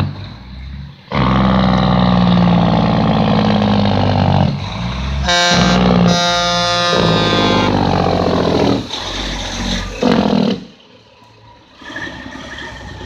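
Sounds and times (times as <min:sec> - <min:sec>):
truck engine noise: 0:00.0 - 0:13.0
truck air horn: 0:05.2 - 0:08.8.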